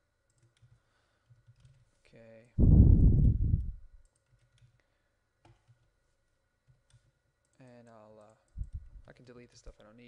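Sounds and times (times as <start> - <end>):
computer mouse clicks: 0.3 - 1.8, 3.2 - 6.0, 6.6 - 9.4.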